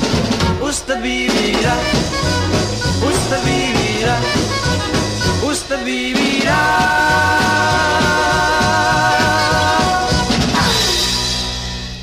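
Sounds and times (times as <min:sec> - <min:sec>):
rock and roll band playing: 0:00.0 - 0:12.0.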